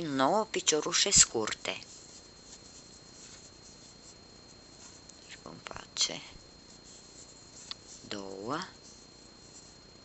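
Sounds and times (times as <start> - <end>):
room hiss: 0.0 - 10.0
thin steady high tone: 0.0 - 10.0
crochet hook pulling yarn: 1.8 - 5.2, 6.7 - 9.8.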